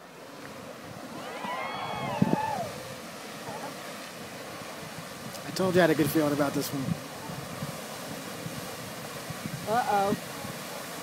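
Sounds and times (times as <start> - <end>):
geyser rushing water and steam: 0.0 - 11.0
onlookers cheering and whooping: 1.0 - 3.7.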